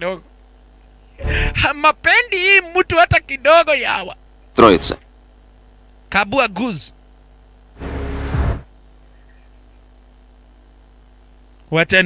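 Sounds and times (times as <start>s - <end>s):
faint low hum: 0.0s - 11.8s
short burst of rushing noise: 7.8s - 8.7s.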